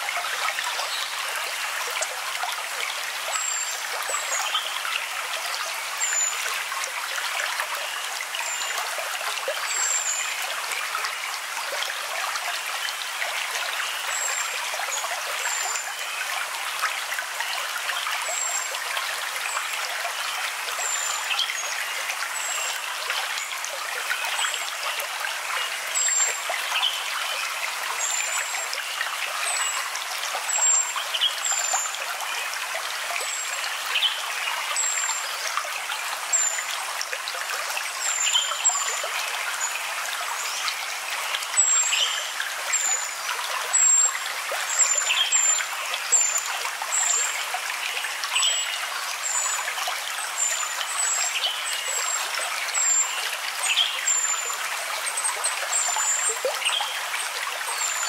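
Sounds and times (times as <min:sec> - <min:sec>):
flowing water: 0:00.0 - 0:58.0.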